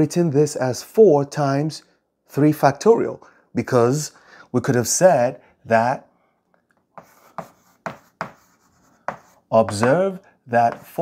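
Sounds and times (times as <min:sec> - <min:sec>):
chalk writing on a blackboard: 0:06.9 - 0:10.0, 0:10.6 - 0:11.0.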